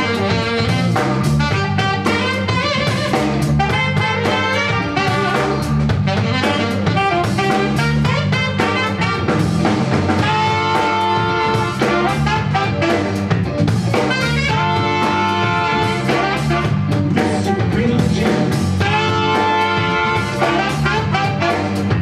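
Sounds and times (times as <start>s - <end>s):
long held horn notes: 0.0s - 9.6s, 10.2s - 13.4s, 14.1s - 17.0s, 18.8s - 22.0s
live funk band playing: 0.0s - 22.0s.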